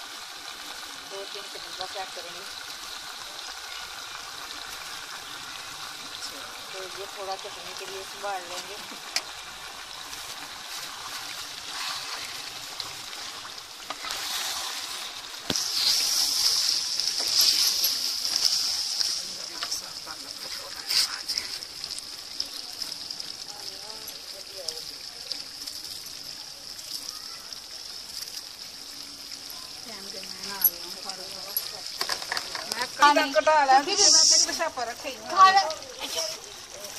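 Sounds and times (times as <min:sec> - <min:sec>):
curry sizzling in a metal pot: 0:00.0 - 0:36.9.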